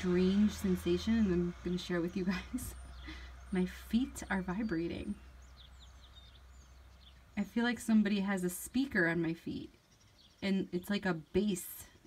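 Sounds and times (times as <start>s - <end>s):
low hum: 0.0s - 9.3s
birds chirping: 0.0s - 12.0s.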